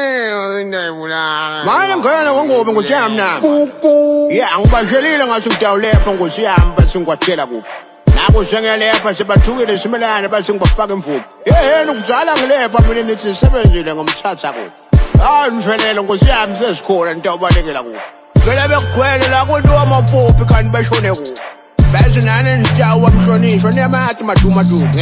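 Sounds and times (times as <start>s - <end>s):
rapping over a beat: 0.0s - 25.0s
low kick drum hits: 23.0s - 23.4s.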